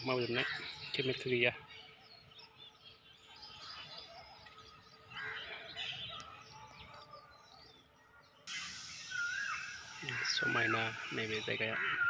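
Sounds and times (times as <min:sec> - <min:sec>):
birds chirping: 0:00.0 - 0:12.0
steady hiss: 0:08.5 - 0:11.6.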